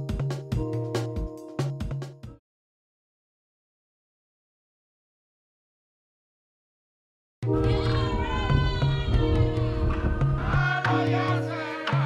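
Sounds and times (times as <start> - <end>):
television theme music: 7.4 - 12.0.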